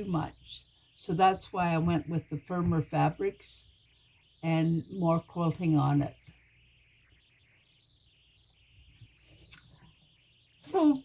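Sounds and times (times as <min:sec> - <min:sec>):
faint high-pitched background: 0:00.0 - 0:11.0.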